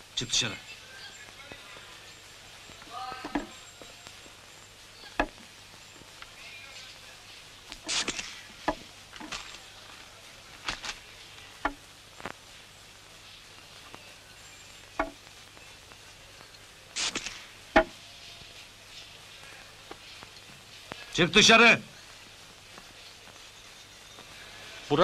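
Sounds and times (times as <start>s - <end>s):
brief hiss: 7.8s - 8.5s, 16.4s - 21.1s.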